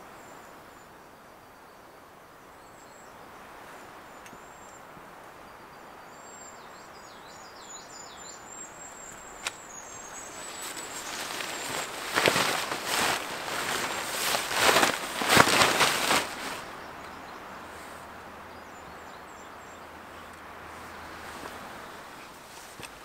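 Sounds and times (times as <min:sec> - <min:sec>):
small birds chirping: 0:01.5 - 0:23.0
tarp rustling: 0:09.4 - 0:16.9.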